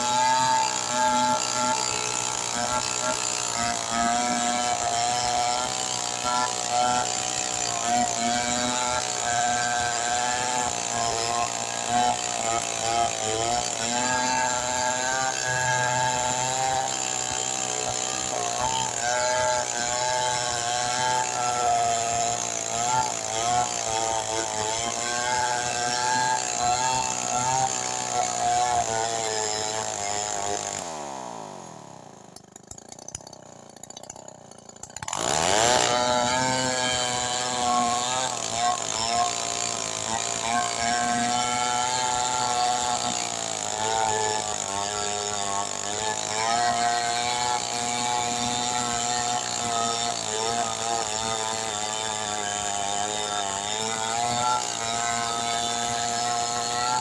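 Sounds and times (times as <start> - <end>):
chainsaw cutting log: 0.0 - 57.0
chainsaw idling: 0.0 - 57.0.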